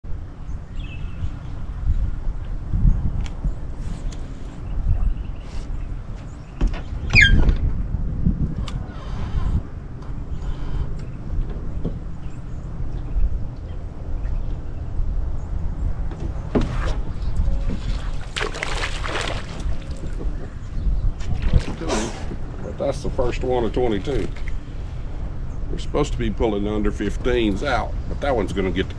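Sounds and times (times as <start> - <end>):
wind buffeting microphone: 0.1 - 28.9
fish splashing at surface: 17.9 - 20.2.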